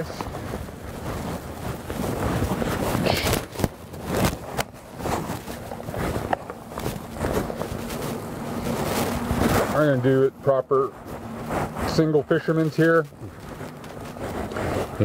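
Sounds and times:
rope and gear rustling: 0.0 - 15.0.

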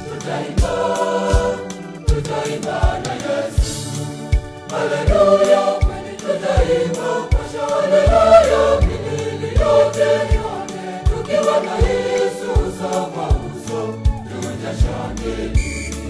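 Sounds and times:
backing music with low beat: 0.0 - 16.0
choir singing a hymn: 0.0 - 16.0.

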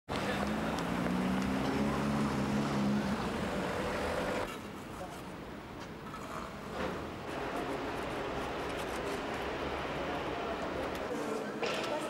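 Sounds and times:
vehicle engine humming: 0.1 - 4.5
road traffic noise: 0.1 - 12.0.

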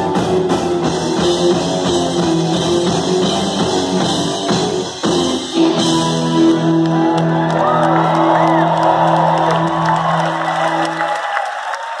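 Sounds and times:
crowd cheering and clapping: 0.0 - 12.0.

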